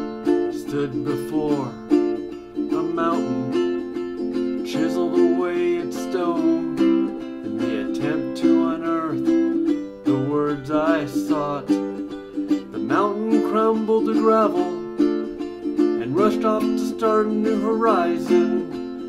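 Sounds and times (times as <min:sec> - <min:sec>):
ukulele strumming chords: 0:00.0 - 0:19.0
man's voice: 0:00.5 - 0:01.9, 0:02.7 - 0:03.7, 0:04.6 - 0:06.8, 0:07.6 - 0:09.3, 0:10.1 - 0:11.8, 0:12.7 - 0:14.8, 0:16.0 - 0:18.7.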